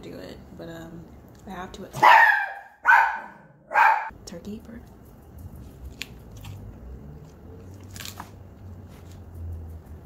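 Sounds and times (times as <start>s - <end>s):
person chewing food: 5.6s - 9.2s.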